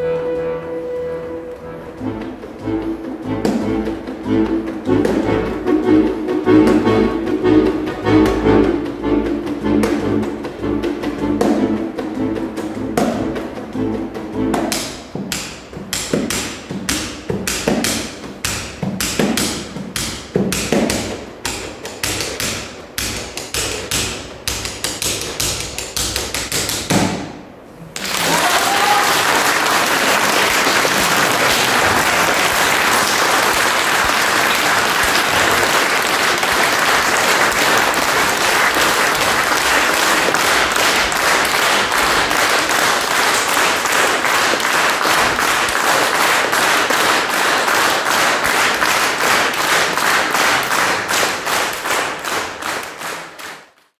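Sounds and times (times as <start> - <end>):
button accordion chords: 0.1 - 12.9
audience applauding: 28.0 - 53.9.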